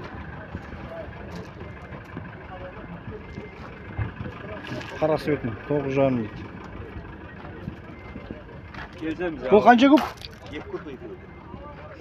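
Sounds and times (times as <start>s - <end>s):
faint voices: 0.0s - 12.0s
low rumble of vehicles: 0.0s - 12.0s.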